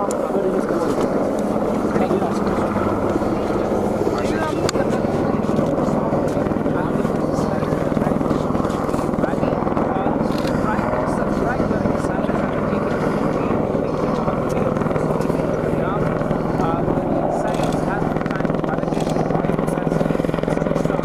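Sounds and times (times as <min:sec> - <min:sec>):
helicopter flying: 0:00.0 - 0:21.0.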